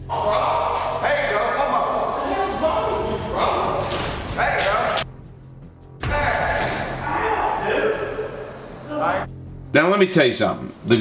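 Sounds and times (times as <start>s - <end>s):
men talking: 0.0s - 5.1s, 6.0s - 11.0s.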